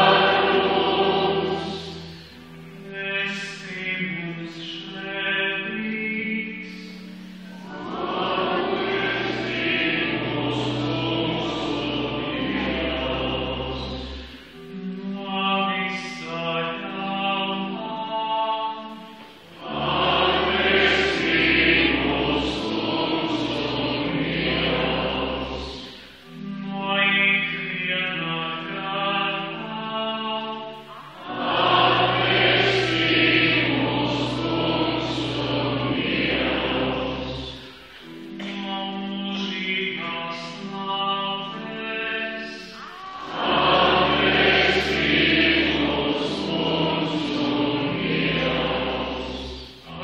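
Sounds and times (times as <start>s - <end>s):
church choir singing: 0.0s - 50.0s.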